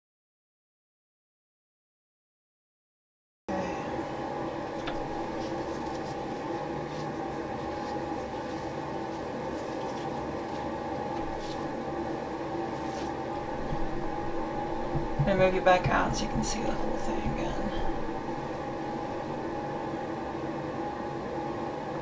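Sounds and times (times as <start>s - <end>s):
steady machine hum: 3.5s - 22.0s.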